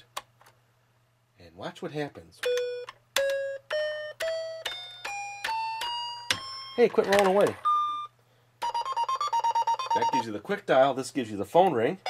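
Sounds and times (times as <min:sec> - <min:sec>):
toy telephone electronic chime notes: 0:02.4 - 0:10.3.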